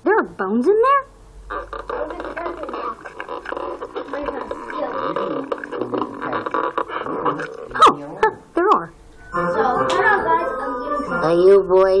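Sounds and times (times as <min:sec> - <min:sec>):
cartoon voices: 0:01.5 - 0:08.0.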